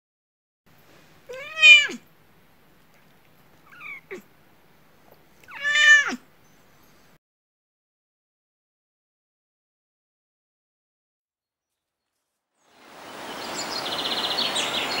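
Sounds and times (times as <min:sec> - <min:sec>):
cat meowing: 0:01.3 - 0:02.1, 0:03.6 - 0:04.3, 0:05.4 - 0:06.2.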